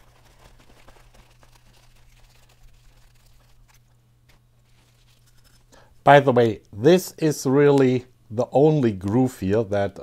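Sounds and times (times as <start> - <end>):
soft paper rustles: 0.0 - 5.8.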